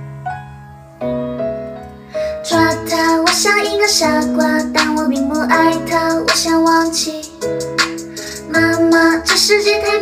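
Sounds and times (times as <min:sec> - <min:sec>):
woman singing pop song: 0:02.3 - 0:10.0
backing track: 0:02.4 - 0:10.0.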